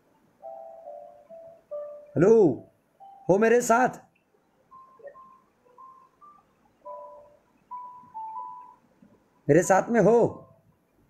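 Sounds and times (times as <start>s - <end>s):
faint simple chime melody: 0.0s - 4.1s, 4.7s - 8.9s, 10.1s - 10.7s.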